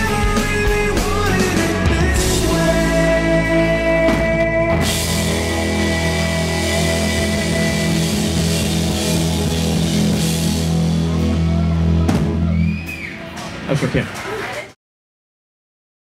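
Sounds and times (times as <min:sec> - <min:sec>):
rock band holding a chord: 0:00.0 - 0:12.6.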